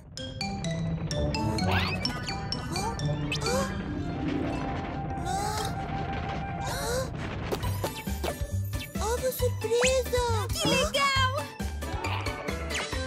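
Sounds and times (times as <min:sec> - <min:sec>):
playful cartoon music: 0:00.0 - 0:13.0.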